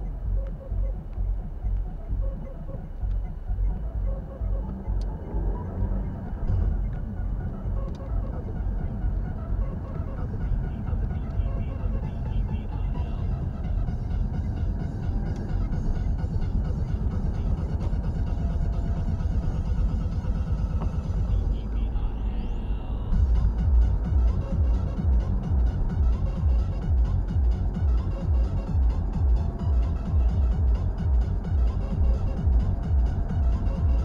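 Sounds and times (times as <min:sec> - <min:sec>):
car radio music: 0:00.0 - 0:34.0
engine and road rumble: 0:00.0 - 0:34.0.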